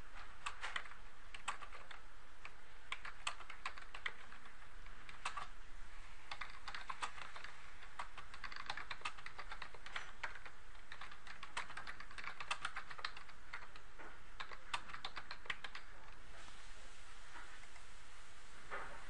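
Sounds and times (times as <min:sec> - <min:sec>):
computer keyboard typing: 0:00.2 - 0:05.6, 0:06.3 - 0:16.2.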